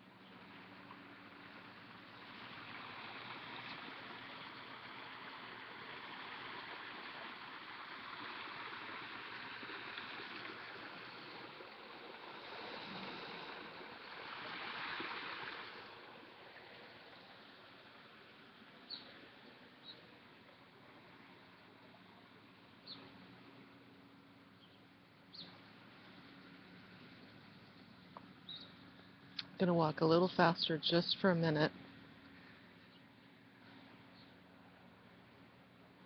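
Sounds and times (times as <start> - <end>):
outdoor rushing hiss: 1.3 - 18.2.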